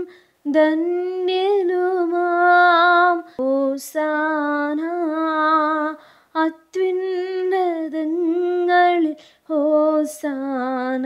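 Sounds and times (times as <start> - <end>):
woman singing a slow chant: 0.0 - 11.0.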